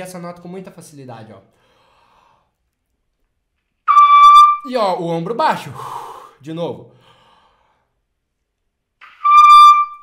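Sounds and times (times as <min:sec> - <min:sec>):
trumpet holding high note: 0:03.9 - 0:04.7, 0:09.0 - 0:10.0.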